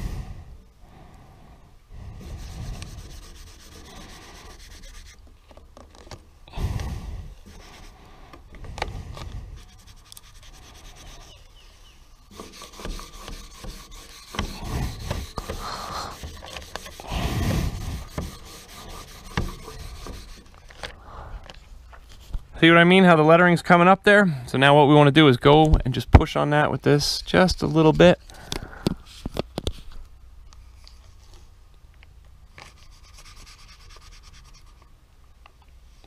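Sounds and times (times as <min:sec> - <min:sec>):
squeegee scraping on tape: 0:02.2 - 0:06.2, 0:06.8 - 0:20.9, 0:32.5 - 0:34.9
transfer tape crinkling: 0:04.8 - 0:06.3.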